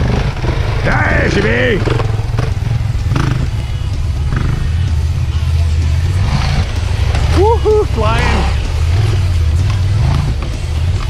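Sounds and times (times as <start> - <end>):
dirt bike engine running: 0.0 - 11.0.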